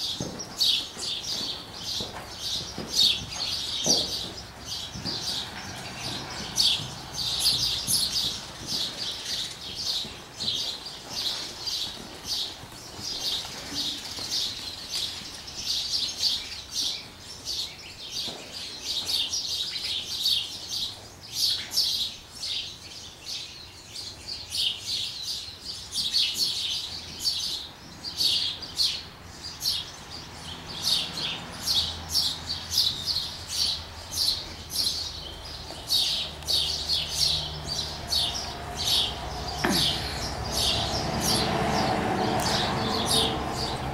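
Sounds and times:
small birds chirping: 0.0s - 43.9s.

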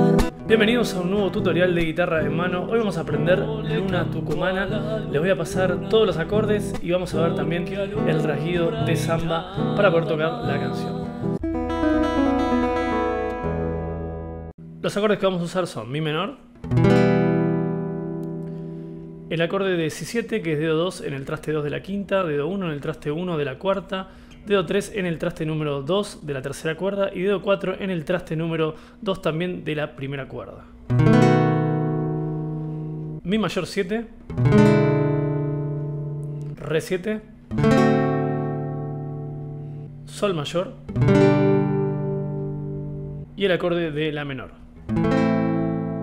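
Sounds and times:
classical guitar chord ringing: 0.0s - 14.5s, 16.6s - 19.4s, 30.9s - 33.2s, 34.3s - 36.6s, 37.5s - 40.1s, 40.9s - 43.3s, 44.8s - 46.0s
low guitar bass note: 0.0s - 14.5s.

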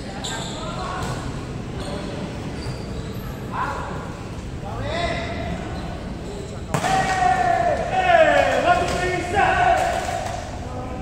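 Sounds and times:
volleyball smack: 6.7s - 7.2s.

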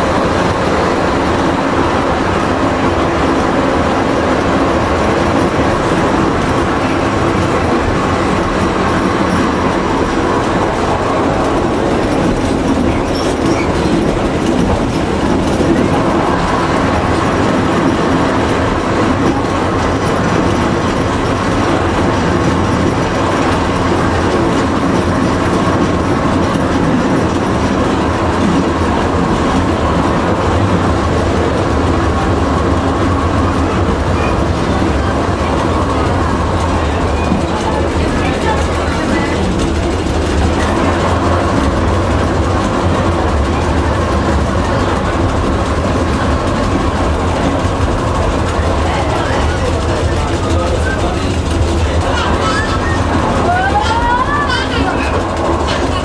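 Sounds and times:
railcar engine hum: 0.0s - 56.0s
wheels clacking over rail joints: 0.0s - 56.0s.

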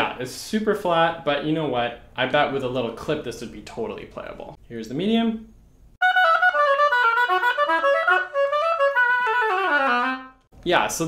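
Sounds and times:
oboe run of notes: 6.0s - 10.5s.

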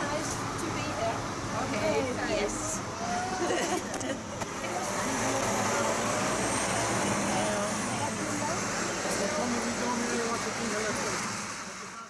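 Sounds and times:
bus diesel engine: 0.0s - 12.0s.

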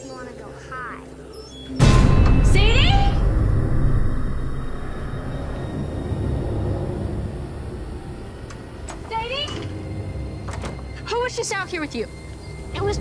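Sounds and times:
deep horror rumble: 1.8s - 13.0s.

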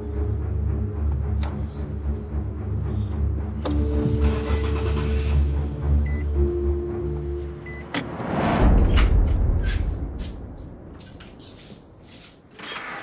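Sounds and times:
tense soundtrack music: 0.0s - 12.0s
heavy low rumble: 6.7s - 12.1s
loud rising whoosh: 7.6s - 11.0s.

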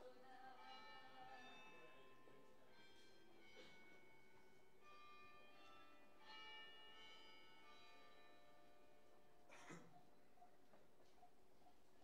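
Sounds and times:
faint bell-like ringing tones: 0.0s - 9.5s.

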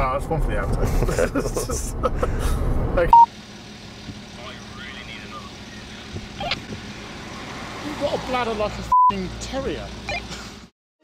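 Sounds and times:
vehicle rumble: 0.0s - 10.7s.

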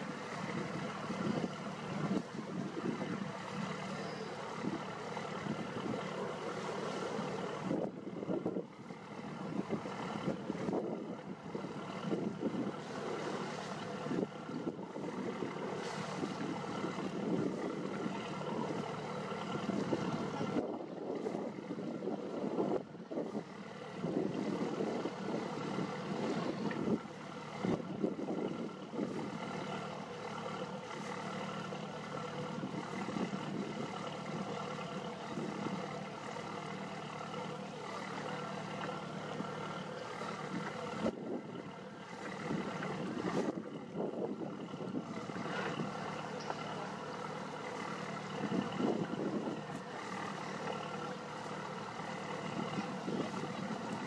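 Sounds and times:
boat engine running: 0.0s - 54.0s.

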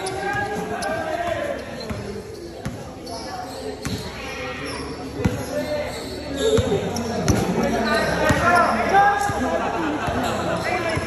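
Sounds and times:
players calling out: 0.0s - 11.0s.

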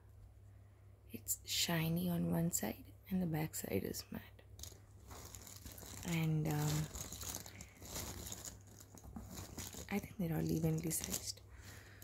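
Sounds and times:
puzzle pieces rustling and clicking: 4.6s - 11.8s.

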